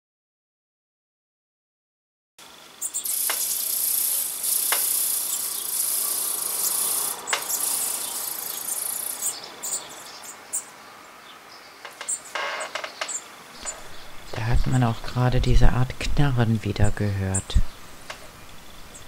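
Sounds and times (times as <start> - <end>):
nestlings begging hissing chorus: 2.8 - 11.0.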